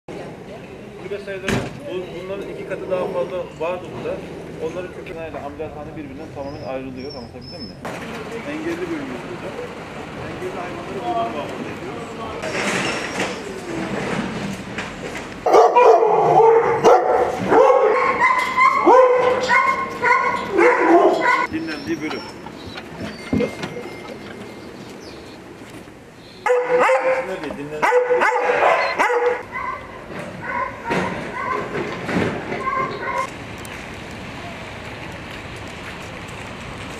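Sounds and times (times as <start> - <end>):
dog barking and whining: 15.4 - 21.5, 26.4 - 31.9, 32.6 - 33.3.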